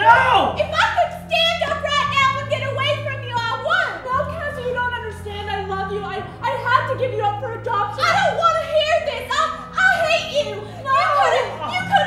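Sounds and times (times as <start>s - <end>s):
women wailing and crying out: 9.3s - 12.0s.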